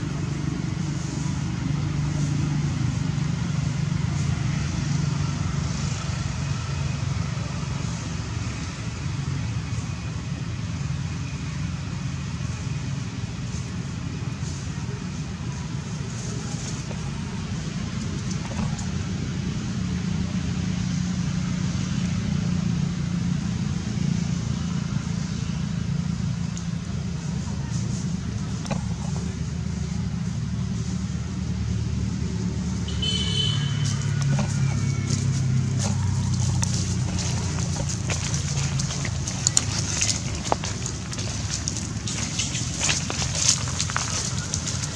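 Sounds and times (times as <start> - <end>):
distant traffic rumble: 0.0 - 44.9
faint voices: 13.7 - 19.2, 33.9 - 44.9.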